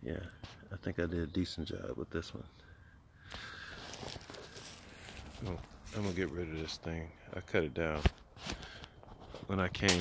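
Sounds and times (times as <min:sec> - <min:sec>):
footsteps through dry leaves: 0:03.6 - 0:06.8.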